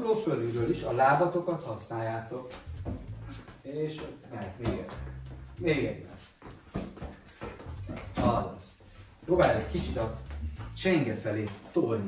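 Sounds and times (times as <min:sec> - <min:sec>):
shuffling footsteps: 0:00.3 - 0:11.9.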